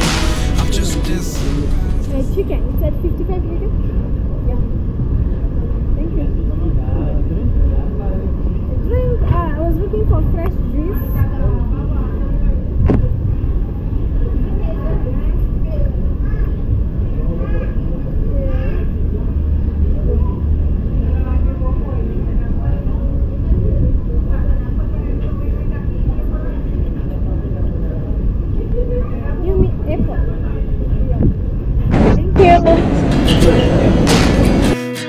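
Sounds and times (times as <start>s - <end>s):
faint background voices: 0.0s - 34.7s
city street rumble: 0.0s - 35.0s.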